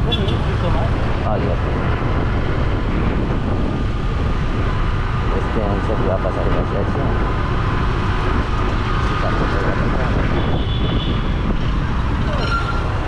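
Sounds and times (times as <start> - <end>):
motorcycle engine rumble: 0.0 - 13.0
wind on microphone: 0.0 - 13.0.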